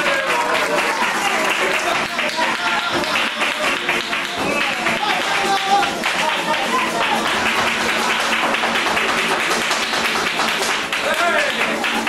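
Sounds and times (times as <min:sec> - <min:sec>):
rapid percussive tapping: 0:00.6 - 0:12.0.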